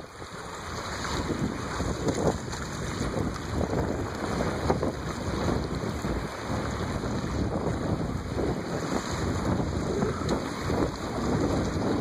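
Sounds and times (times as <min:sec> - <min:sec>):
water splashing from wading: 0:00.0 - 0:12.0
wind buffeting microphone: 0:00.0 - 0:12.0.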